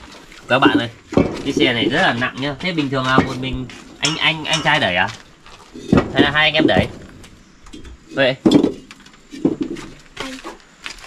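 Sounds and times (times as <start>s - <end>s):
clay bricks clinking: 0.0s - 11.0s
person speaking: 0.5s - 5.2s, 6.1s - 7.0s.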